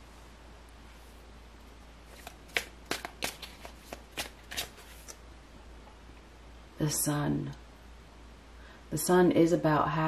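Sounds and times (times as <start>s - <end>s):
cards being shuffled and snapped: 2.1s - 5.2s.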